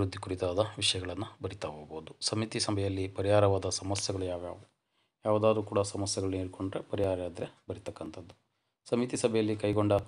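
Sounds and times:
man narrating: 0.0s - 10.0s.

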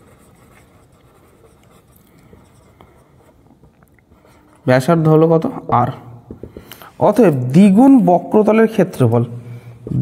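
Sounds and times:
marker pen writing on whiteboard: 0.0s - 5.5s.

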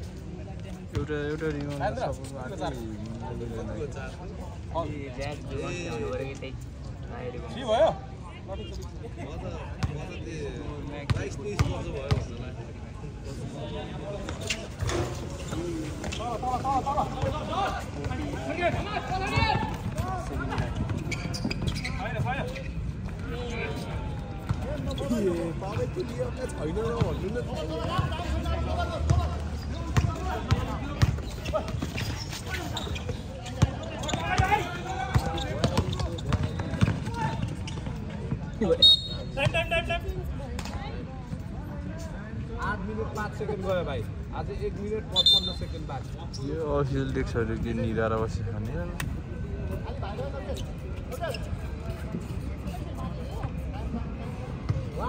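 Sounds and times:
shouting and chatter: 13.0s - 43.4s.

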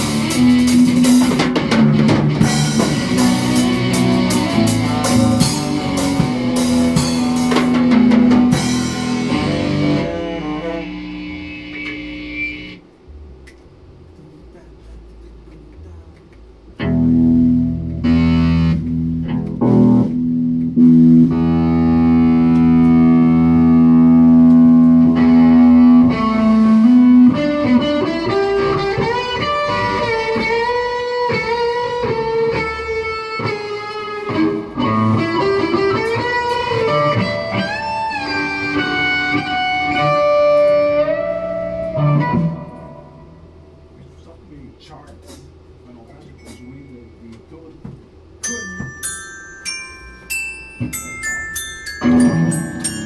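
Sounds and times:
electric guitar rock jam: 0.0s - 12.9s, 16.3s - 43.9s.

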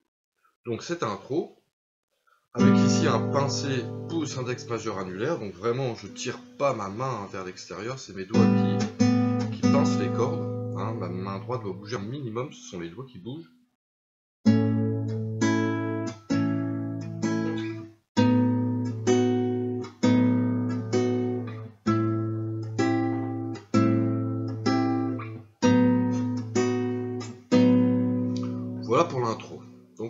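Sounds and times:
classical guitar fingerpicked: 2.6s - 6.8s, 8.3s - 11.1s, 14.5s - 29.9s.

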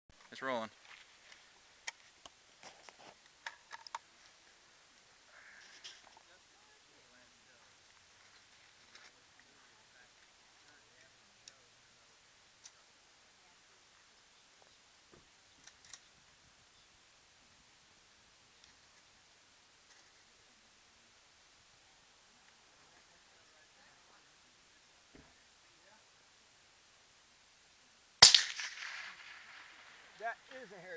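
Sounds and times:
suppressed rifle shot: 28.2s - 30.1s.

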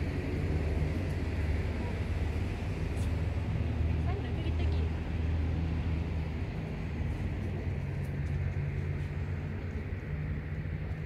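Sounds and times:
low outdoor rumble with hum: 0.0s - 11.0s.

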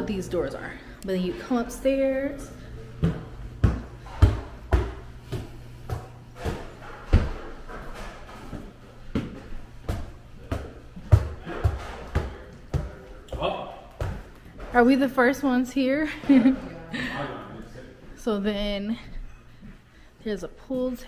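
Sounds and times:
footsteps on wooden stairs: 2.8s - 14.9s.

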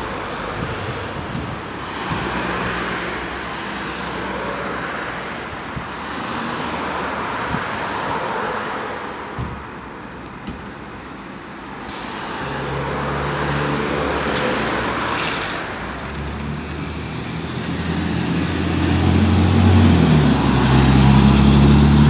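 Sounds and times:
bus engine accelerating: 11.8s - 22.0s.

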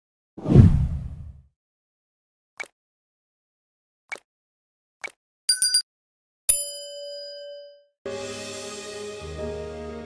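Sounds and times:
deep whoosh: 0.4s - 1.4s.

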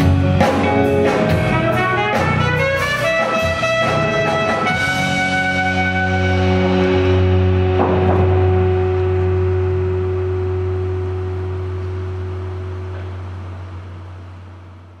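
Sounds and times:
live band holding low note: 0.0s - 15.0s.

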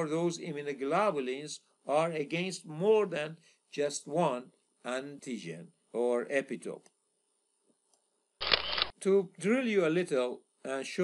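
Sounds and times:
camera shutter sound effect: 8.4s - 9.0s.

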